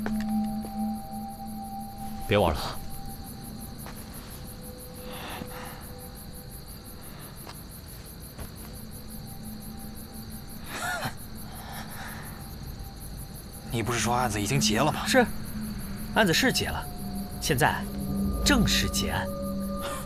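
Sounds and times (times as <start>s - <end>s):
crickets chirping: 0.0s - 20.0s
faint background music drone: 0.0s - 20.0s.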